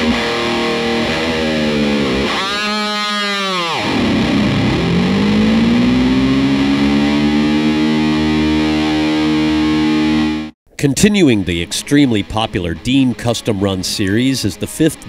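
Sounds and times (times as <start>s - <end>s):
distorted electric guitar dive bomb: 0.0s - 14.3s.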